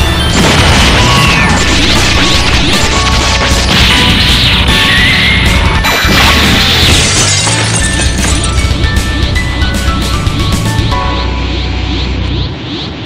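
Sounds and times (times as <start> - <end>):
music: 0.0 - 12.6
cartoon crashes and hits: 0.2 - 8.5
sweeping tones: 7.6 - 13.0.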